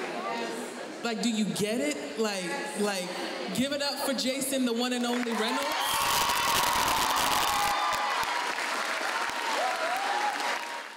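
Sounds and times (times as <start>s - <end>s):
audience applauding: 5.2s - 10.9s.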